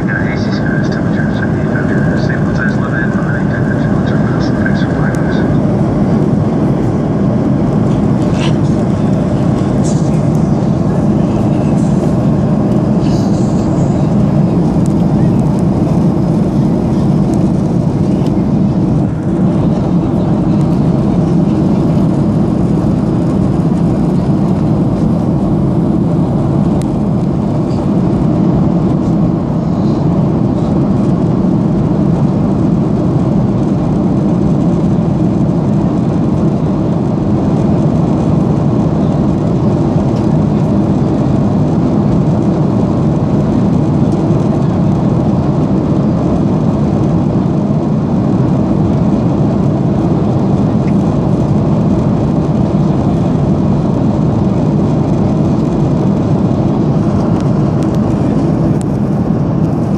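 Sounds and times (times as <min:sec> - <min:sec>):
airplane cabin engine rush: 0:00.0 - 0:59.9.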